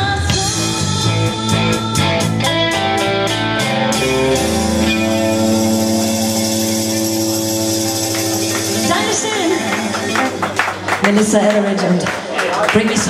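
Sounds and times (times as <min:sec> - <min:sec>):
electric guitar chord ringing: 0:02.1 - 0:11.3.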